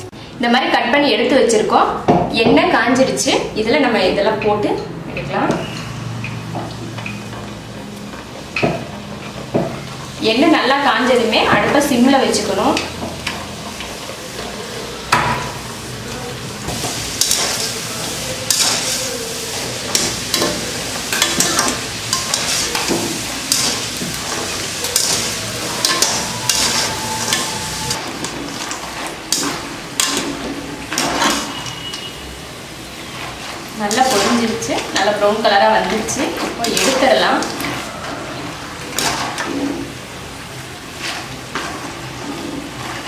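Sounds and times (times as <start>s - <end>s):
dough sizzling in hot oil: 5.6s - 43.0s
skimmer scraping and clinking on pan: 19.8s - 32.1s.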